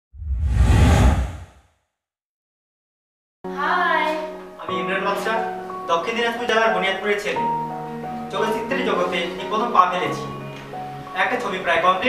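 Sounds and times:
whoosh with deep rumble: 0.1 - 1.6.

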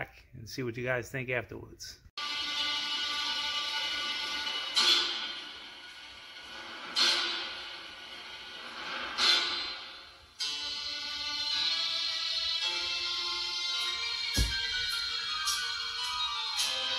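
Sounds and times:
music through small speaker: 2.2 - 9.5, 10.4 - 16.9.

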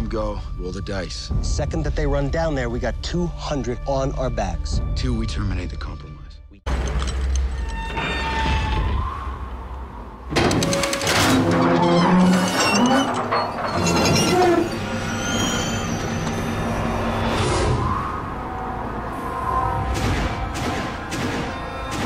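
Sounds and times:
dramatic trailer music: 0.0 - 7.6, 13.2 - 22.0
loud crash-like hit: 19.9 - 22.0.

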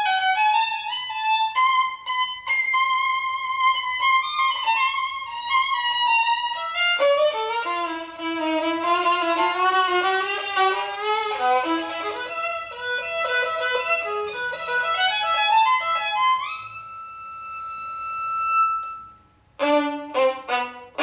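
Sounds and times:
solo violin melody with vibrato: 0.0 - 21.0.

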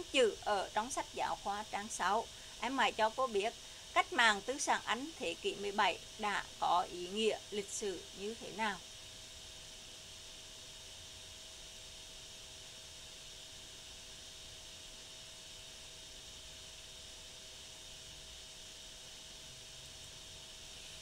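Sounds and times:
faint background hiss: 0.0 - 21.0
faint steady hum: 0.0 - 21.0.

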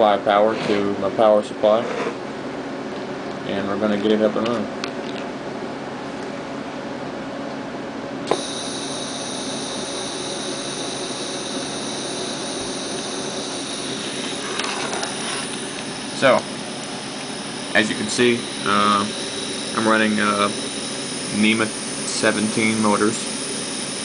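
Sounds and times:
electrical hum: 0.0 - 24.0
stepper motors high-pitched whine: 8.3 - 24.0.

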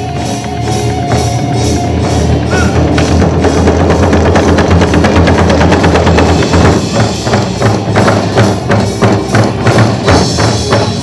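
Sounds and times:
barrel drums struck with sticks: 2.5 - 11.0.

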